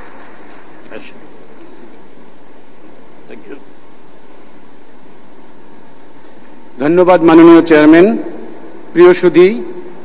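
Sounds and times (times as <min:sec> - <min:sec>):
room noise hiss in a hall: 0:00.0 - 0:10.0.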